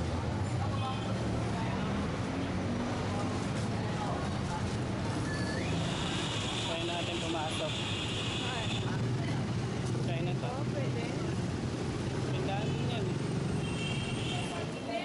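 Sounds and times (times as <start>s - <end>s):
low rumble of traffic: 0.0s - 15.0s
voices of passers-by: 0.0s - 15.0s.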